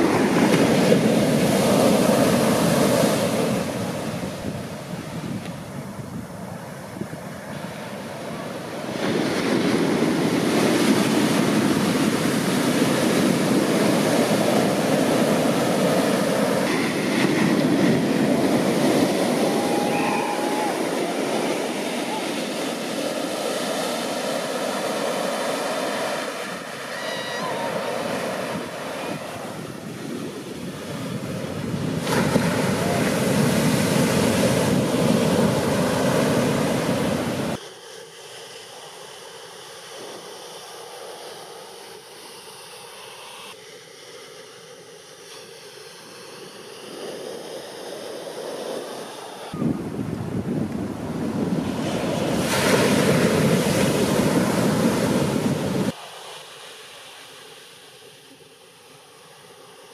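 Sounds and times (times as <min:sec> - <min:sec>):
wind buffeting microphone: 0:00.0 - 0:37.6, 0:48.5 - 0:56.0
ocean surf breaking: 0:00.0 - 0:37.8, 0:45.1 - 0:59.9.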